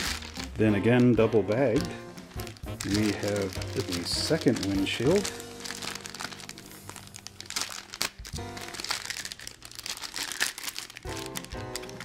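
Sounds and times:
knife slitting plastic bag: 0.0 - 1.6, 2.3 - 12.0
background music: 0.0 - 12.0
plastic bag crinkling: 0.0 - 12.0.

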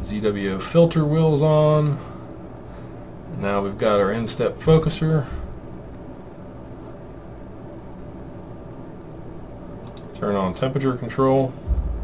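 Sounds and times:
room tone hum and hiss: 0.0 - 12.0.

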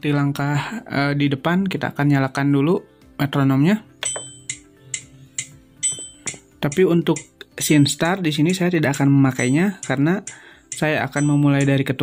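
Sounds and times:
higher ringing metronome click: 4.0 - 7.5, 9.3 - 11.9
metronome ticking: 4.0 - 12.0.

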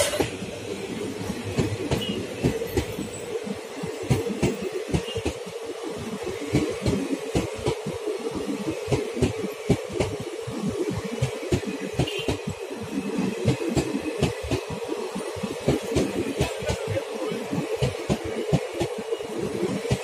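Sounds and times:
train coaches rumbling past: 0.0 - 20.0
wheels thumping and clicking on rails: 0.0 - 20.0.

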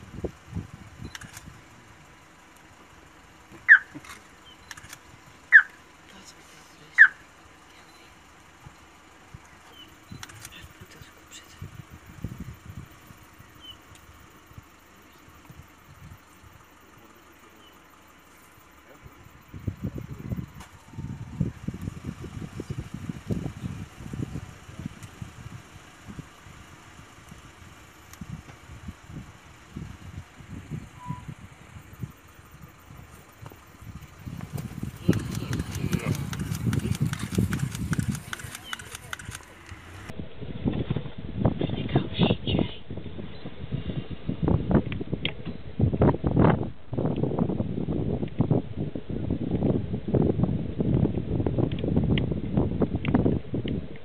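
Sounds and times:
bird whistled calls: 3.7 - 4.6, 5.5 - 5.8, 13.6 - 13.8, 31.0 - 31.3.

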